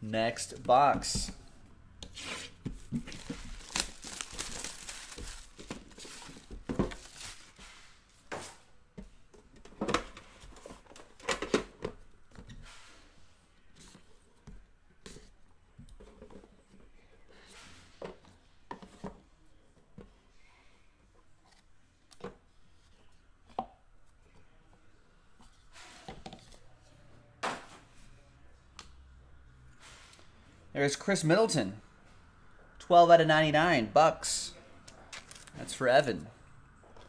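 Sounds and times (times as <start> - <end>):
plastic wrap tearing and crinkling: 3.1 - 7.6, 35.1 - 35.6.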